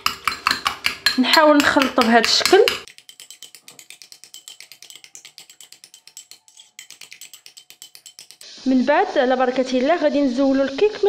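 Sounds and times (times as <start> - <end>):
metal spoon clicking against bowl: 0.0 - 8.5.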